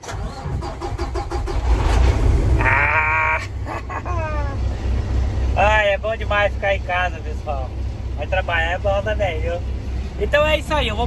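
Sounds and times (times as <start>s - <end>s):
diesel engine cranking and idling: 0.0s - 11.0s.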